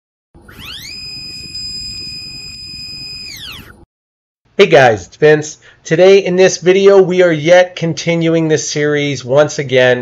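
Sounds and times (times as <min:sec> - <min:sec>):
synthetic sweeping tone: 0:00.4 - 0:03.9.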